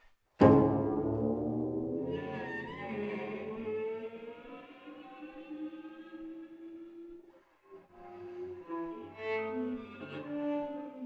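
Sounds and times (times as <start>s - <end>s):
cello played with bow: 0.4s - 11.0s.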